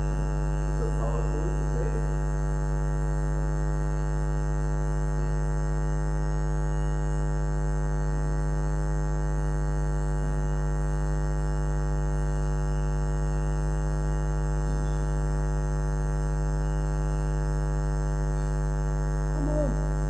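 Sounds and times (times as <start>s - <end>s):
electrical mains hum: 0.0s - 20.0s.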